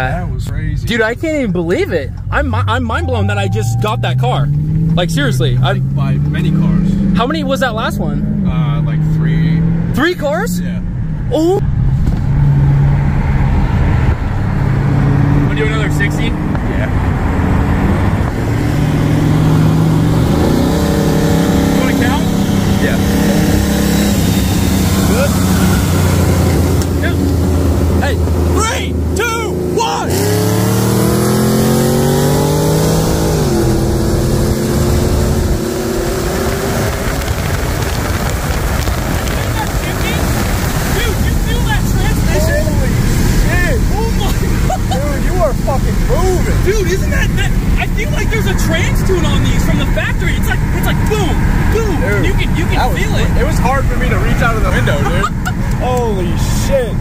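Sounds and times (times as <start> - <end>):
car engine at full throttle: 0.0 - 57.0.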